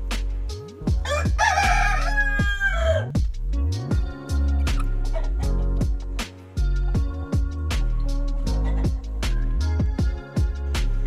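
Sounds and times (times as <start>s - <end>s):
music with deep sliding bass: 0.0s - 11.0s
rooster crowing: 0.9s - 3.2s.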